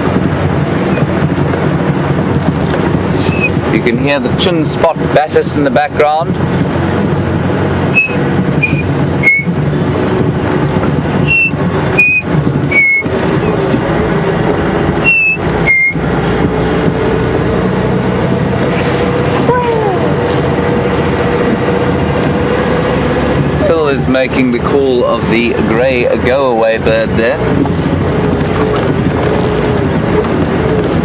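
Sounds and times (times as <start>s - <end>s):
vehicle engine running: 0.0s - 31.0s.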